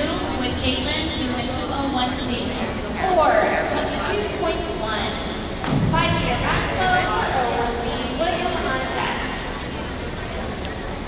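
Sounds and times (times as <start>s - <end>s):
voices calling out and chattering: 0.0s - 11.0s.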